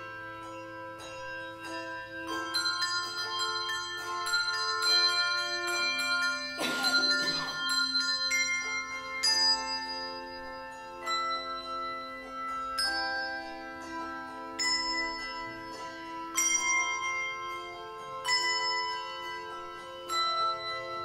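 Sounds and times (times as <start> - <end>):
handbell choir ringing: 0.0 - 21.0.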